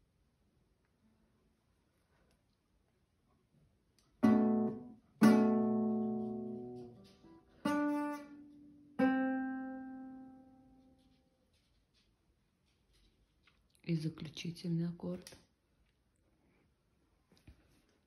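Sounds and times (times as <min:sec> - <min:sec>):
classical guitar chords: 0:04.2 - 0:10.8.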